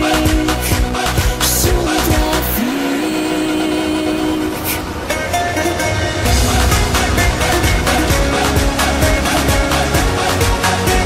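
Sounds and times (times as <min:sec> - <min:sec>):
pop song beat and bass: 0:00.0 - 0:11.0
swishing noise effects: 0:03.6 - 0:10.5.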